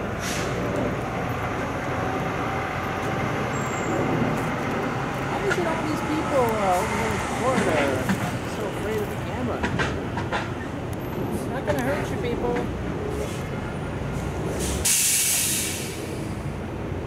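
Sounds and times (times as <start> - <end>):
trucks running and passing: 0.0 - 17.0
faint voices: 5.2 - 10.0.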